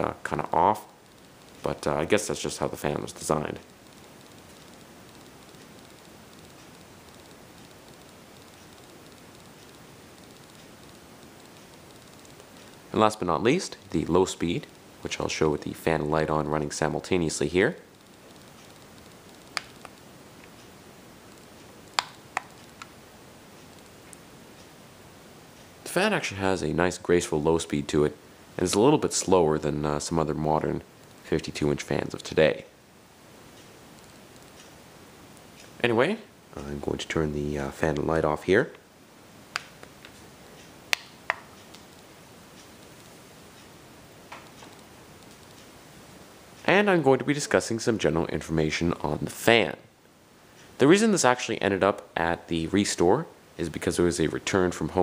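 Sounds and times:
ceiling fan running: 0:00.0 - 0:55.0
sharp clicks: 0:17.9 - 0:20.7, 0:21.3 - 0:23.0, 0:39.5 - 0:43.7
sharp switch clicks: 0:40.9 - 0:41.5.

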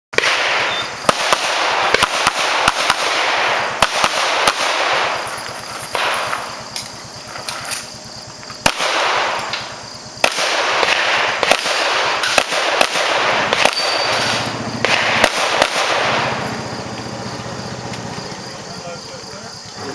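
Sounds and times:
pistol shots: 0:00.2 - 0:18.1.

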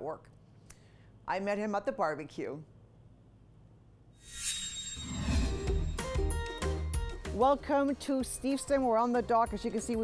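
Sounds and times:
rising whoosh: 0:04.2 - 0:06.4
music: 0:05.2 - 0:10.0.

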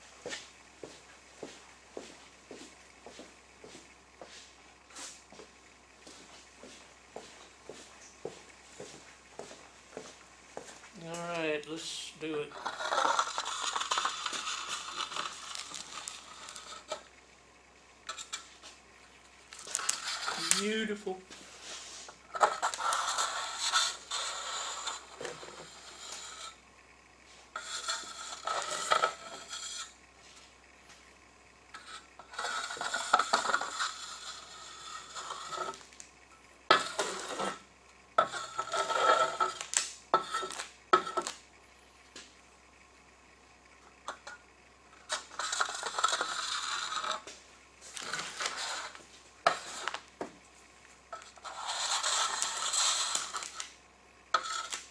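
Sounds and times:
steel trowel scraping resin: 0:12.5 - 0:17.0, 0:18.1 - 0:18.5, 0:19.6 - 0:20.9, 0:21.6 - 0:26.6, 0:27.6 - 0:29.9, 0:31.8 - 0:35.8, 0:36.7 - 0:37.6, 0:38.2 - 0:41.3, 0:45.0 - 0:47.2, 0:48.0 - 0:50.0, 0:51.2 - 0:53.7, 0:54.3 - 0:54.9.

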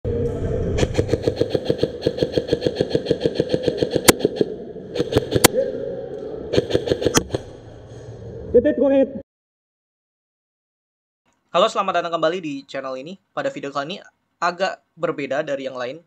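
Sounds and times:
steady hum: 0:00.1 - 0:08.5.

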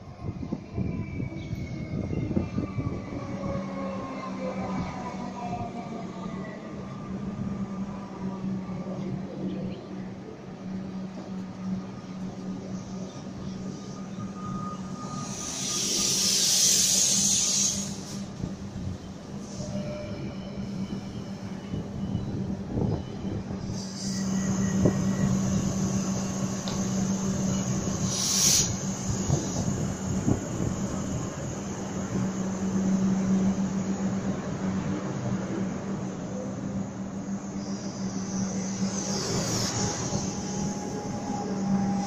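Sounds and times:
high hissing: 0:15.0 - 0:18.4, 0:23.7 - 0:33.0.

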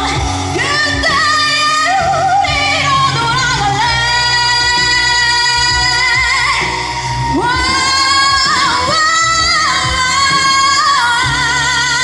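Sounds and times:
recorded backing track: 0:00.0 - 0:12.0
woman singing pop ballad: 0:00.0 - 0:12.0.

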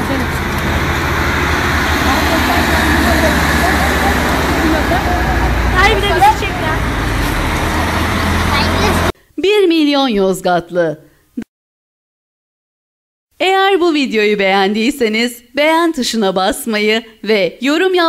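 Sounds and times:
people calling out: 0:00.0 - 0:09.1
road traffic rumble: 0:00.0 - 0:09.1.

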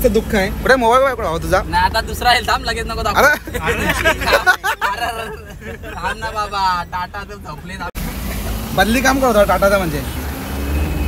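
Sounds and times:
people talking in car: 0:00.0 - 0:10.2
road and engine rumble: 0:00.0 - 0:11.0.

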